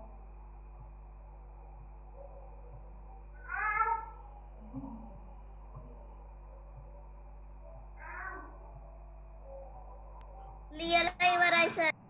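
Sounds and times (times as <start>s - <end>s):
weak low sound: 0.0s - 11.2s.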